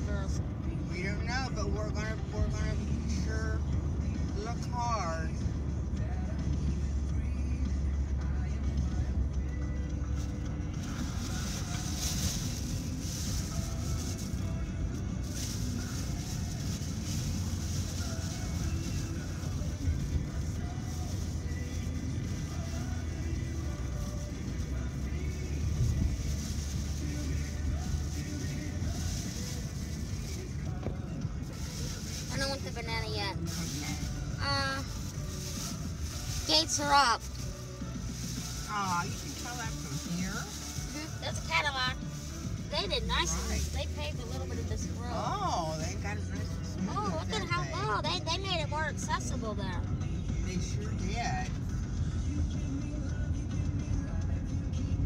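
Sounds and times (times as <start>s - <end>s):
car engine and road noise: 0.0s - 55.0s
car radio music: 0.0s - 55.0s.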